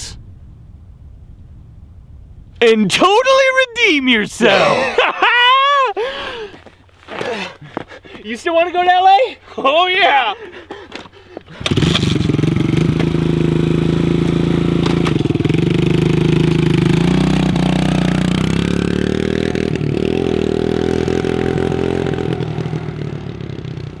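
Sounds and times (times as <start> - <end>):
dirt bike engine running: 11.4 - 24.0.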